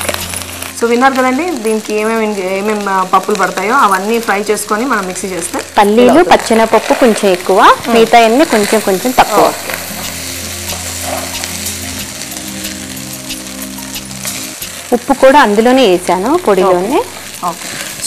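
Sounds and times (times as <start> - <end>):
light sizzle: 0.0 - 18.0
person speaking: 5.8 - 6.9
wooden spatula scraping pot: 6.0 - 11.7.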